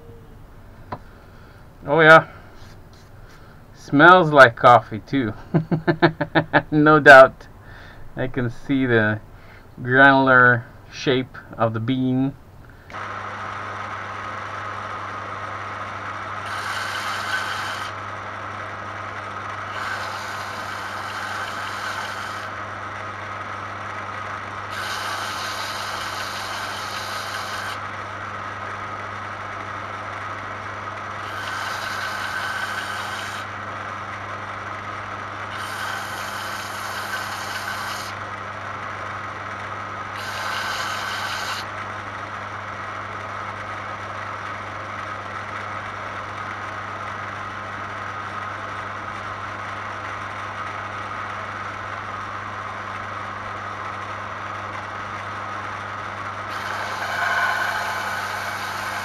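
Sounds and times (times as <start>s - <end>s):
belt sander motor hum: 12.9s - 34.6s, 35.4s - 38.2s, 40.2s - 42.3s, 54.8s - 59.0s
hiss of sanding: 16.5s - 18.0s, 19.7s - 22.5s, 24.7s - 27.8s, 31.3s - 33.5s, 35.5s - 38.2s, 40.2s - 41.7s, 56.5s - 59.0s.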